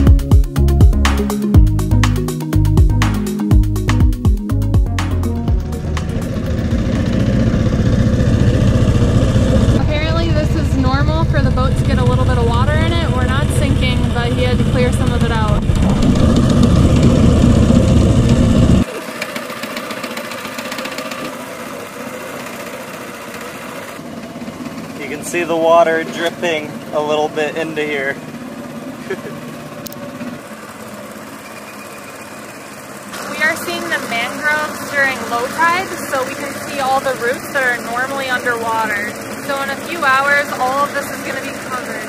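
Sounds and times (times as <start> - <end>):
small boat engine running: 0.0 - 42.0
woman speaking: 9.8 - 15.8, 33.2 - 42.0.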